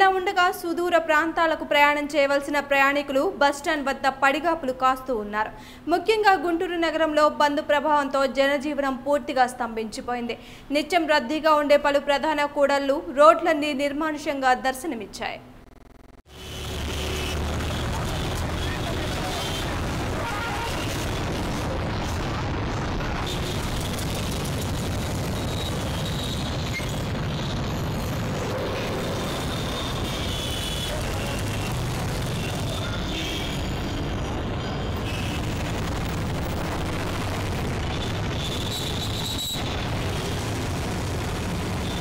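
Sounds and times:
motorcycles and vehicles passing: 16.3 - 38.7
low traffic rumble: 16.3 - 42.0.

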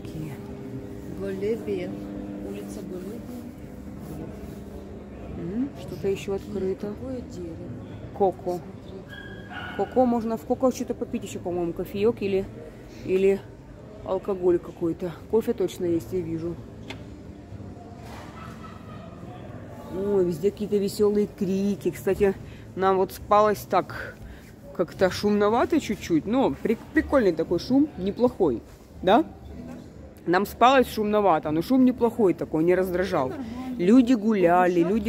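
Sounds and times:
low mechanical hum: 0.0 - 9.8.

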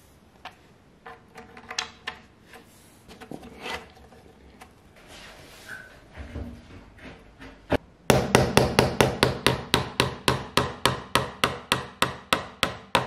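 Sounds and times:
hammer tapping nail: 8.1 - 13.0.

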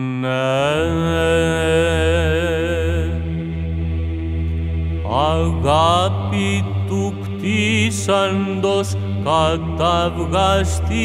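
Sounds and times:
man chanting: 0.0 - 3.3, 5.1 - 11.0
low vocal drone: 0.0 - 11.0.

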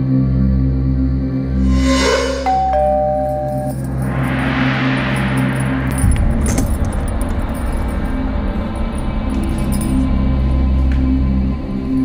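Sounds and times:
low drone: 0.3 - 12.0
rising whoosh: 1.5 - 3.3, 3.9 - 6.9.

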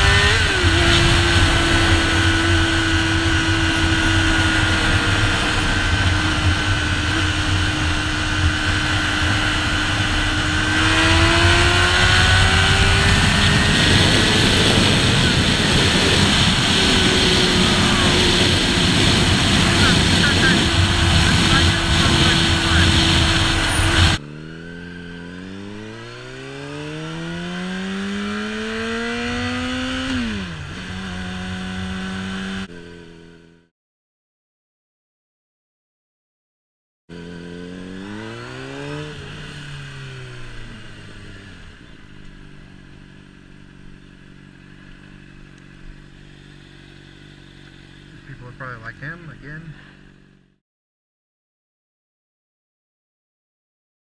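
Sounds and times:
wind noise on microphone: 0.0 - 24.2
motorcycle engine revving: 0.0 - 33.7, 37.1 - 50.6.

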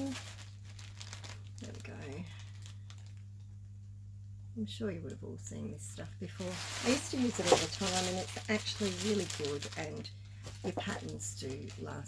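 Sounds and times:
fabric crinkling: 0.0 - 3.6, 6.4 - 12.0.

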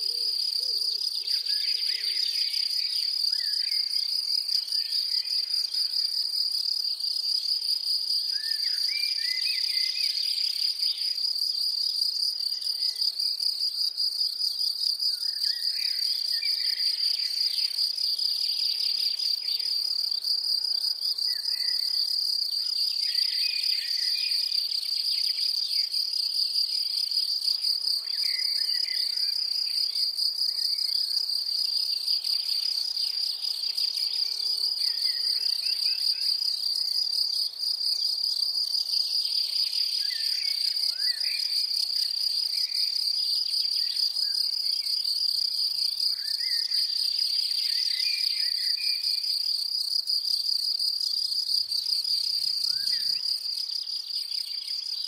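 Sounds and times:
high-pitched insect trill: 0.0 - 55.0.

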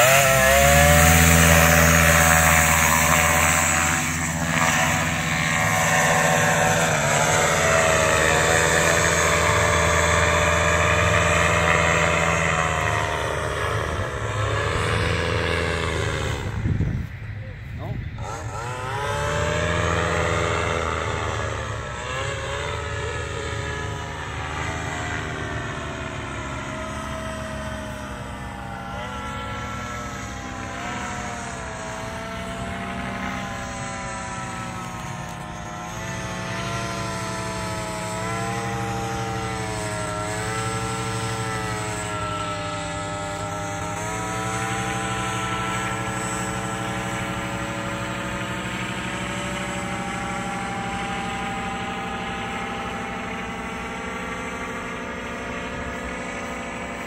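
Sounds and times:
paramotor engine droning overhead: 0.0 - 57.0.

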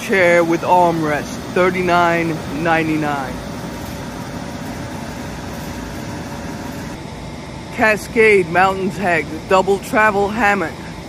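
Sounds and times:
ventilation hum: 0.0 - 11.0.

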